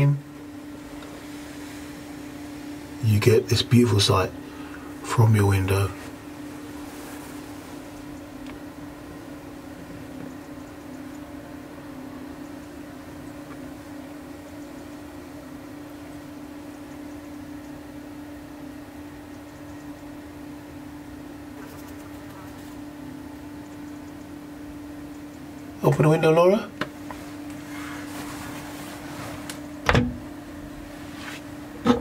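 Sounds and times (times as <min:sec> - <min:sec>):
extractor fan humming: 0:00.0 - 0:32.0.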